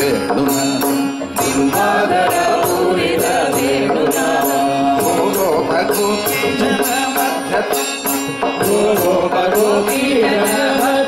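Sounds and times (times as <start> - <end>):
harmonium steady tone: 0.0 - 11.0
mridangam drumming: 0.0 - 11.0
men singing together: 1.4 - 11.0.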